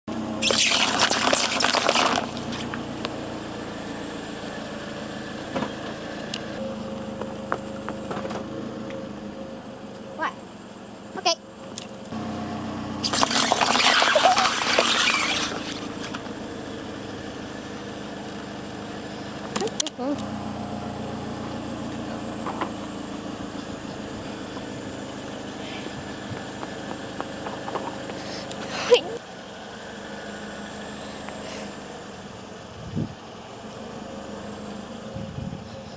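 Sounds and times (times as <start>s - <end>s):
car engine idling: 2.1s - 35.9s.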